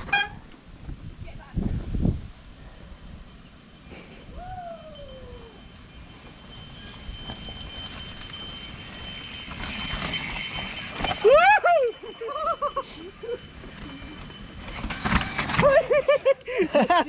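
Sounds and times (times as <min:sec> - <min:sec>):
bike rattling: 0:02.6 - 0:17.0.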